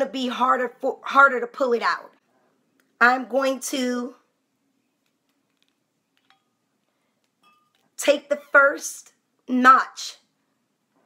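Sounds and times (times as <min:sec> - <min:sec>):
faint metallic corkscrew clinks: 0:07.4 - 0:07.9.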